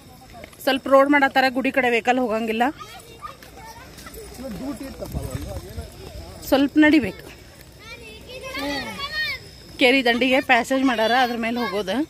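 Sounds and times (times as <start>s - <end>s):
women chattering: 0.0s - 12.0s.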